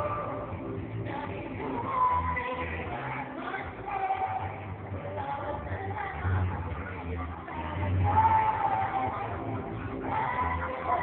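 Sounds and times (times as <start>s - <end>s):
backing music through speakers: 0.0s - 11.0s.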